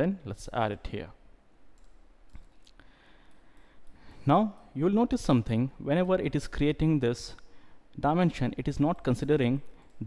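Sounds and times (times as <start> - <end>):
computer mouse clicks: 1.7 - 4.0.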